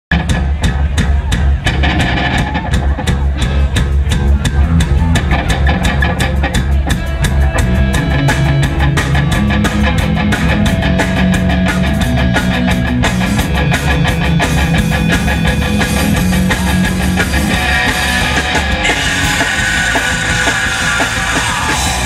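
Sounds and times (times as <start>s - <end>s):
bass guitar: 0.1s - 22.0s
drum kit fast beat: 0.1s - 22.0s
electric guitars: 0.1s - 22.0s.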